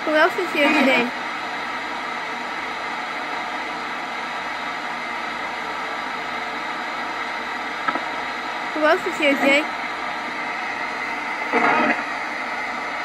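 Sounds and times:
radio static hiss: 0.0s - 13.0s.

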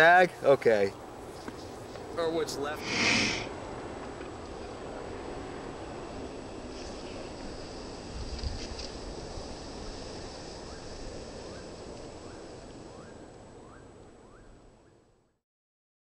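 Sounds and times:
wind noise: 1.2s - 14.7s.

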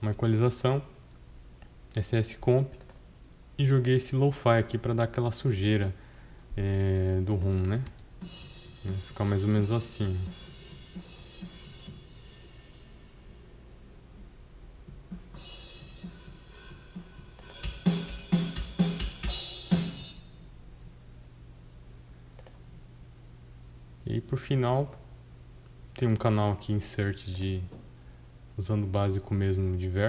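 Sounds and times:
drum kit through studio monitors: 8.0s - 20.4s
cymbal crashes: 8.2s - 9.2s, 15.3s - 20.2s.

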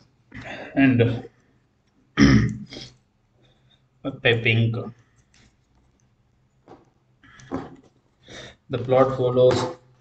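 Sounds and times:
man clearing his throat: 2.2s - 2.7s.

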